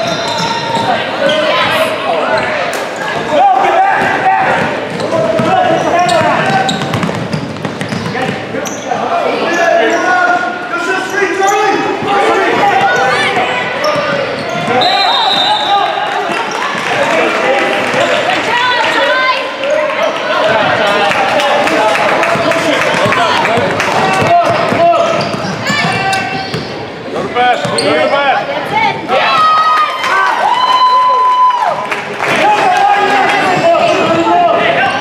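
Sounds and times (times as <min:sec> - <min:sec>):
basketball bouncing on hardwood: 0:06.2 - 0:08.4.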